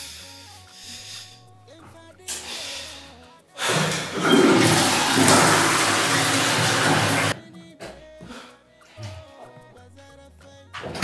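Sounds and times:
background music: 0.0 - 11.0
toilet flushing: 3.6 - 7.4.

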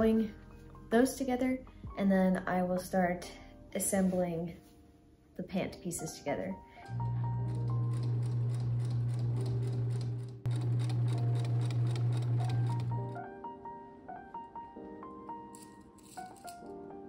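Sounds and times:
sewing machine stitching: 6.9 - 13.2.

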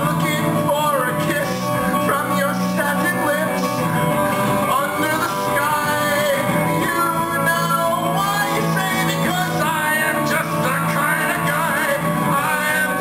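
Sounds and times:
live band with electric guitar: 0.0 - 13.0.

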